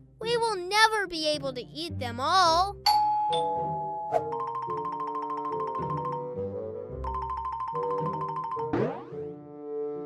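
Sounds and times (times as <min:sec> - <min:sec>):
cartoon music with repeated high note: 0:02.8 - 0:09.3.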